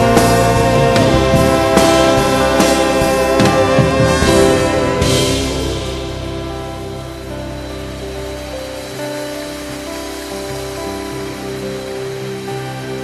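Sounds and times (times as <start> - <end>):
choir singing held chords: 0.0 - 12.9.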